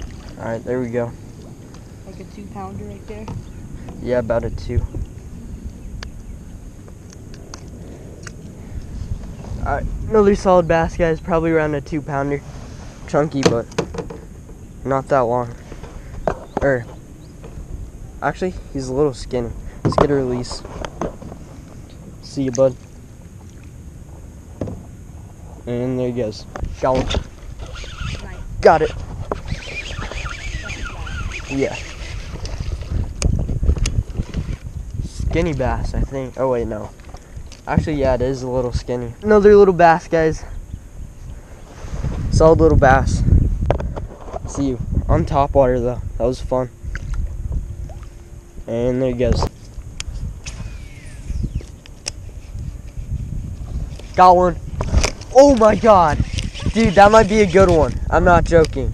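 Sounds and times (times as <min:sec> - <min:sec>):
wind rumble on microphone: 0:00.0 - 0:58.9
fishing rod handling rumble: 0:26.5 - 0:28.2, 0:28.8 - 0:35.6, 0:49.3 - 0:58.8
sharp reel clicks: 0:29.3 - 0:32.6, 0:50.0 - 0:52.2
faint falling whine: 0:44.5 - 0:53.4.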